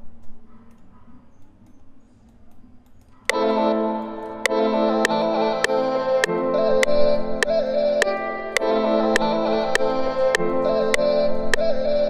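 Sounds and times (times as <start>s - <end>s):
sustained synth chord: 3.3s - 11.6s.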